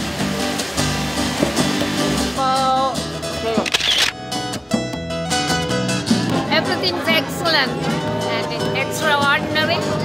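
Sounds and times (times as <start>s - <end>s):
background music: 0.0s - 10.0s
camera shutter clicks: 3.7s - 4.2s.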